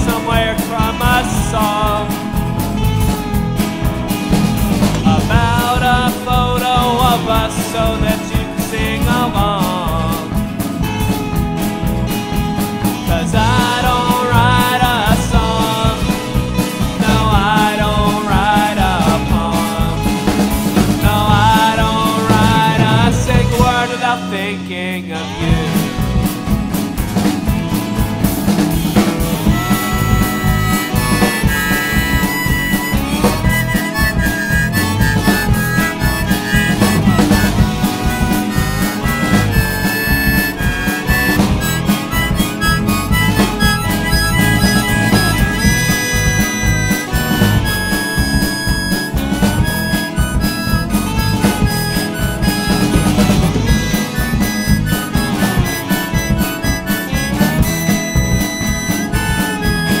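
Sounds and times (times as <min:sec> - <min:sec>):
folk band playing: 0:00.0 - 1:00.0
harmonica solo: 0:25.2 - 1:00.0.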